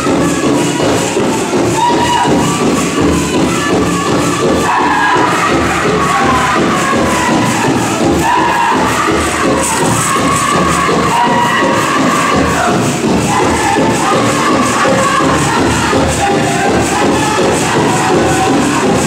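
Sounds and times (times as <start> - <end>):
drum group singing in high voices: 0.0 - 19.0
metal jingle cones shaking: 0.0 - 19.0
steady drumbeat: 0.0 - 19.0.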